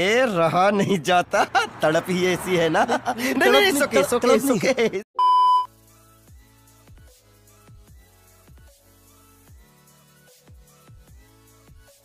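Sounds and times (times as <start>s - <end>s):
steady test tone beep: 5.2s - 5.7s.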